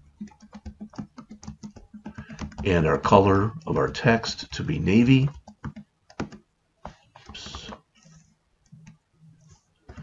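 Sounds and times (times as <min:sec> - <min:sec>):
keyboard keystrokes: 0:00.2 - 0:02.9, 0:05.2 - 0:06.4.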